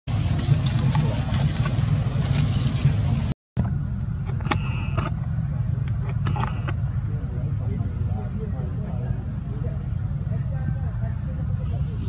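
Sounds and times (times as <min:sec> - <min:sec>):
low outdoor rumble: 0:00.1 - 0:12.0.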